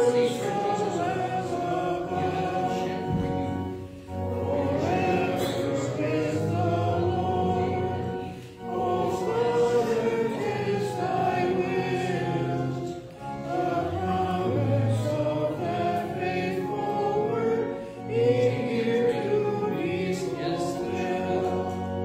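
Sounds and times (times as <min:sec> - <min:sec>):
group singing a hymn: 0:00.0 - 0:22.0.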